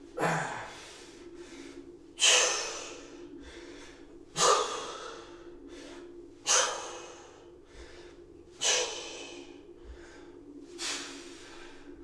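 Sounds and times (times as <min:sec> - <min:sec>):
quiet inhales: 0:00.5 - 0:12.0.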